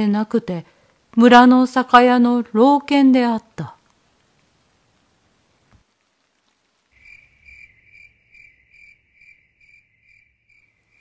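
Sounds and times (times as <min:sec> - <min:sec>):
cricket chirping: 0:07.0 - 0:11.0.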